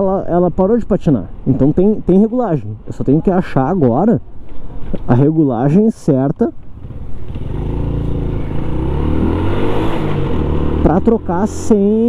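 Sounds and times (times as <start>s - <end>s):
motorbike engine revving: 6.7s - 12.0s.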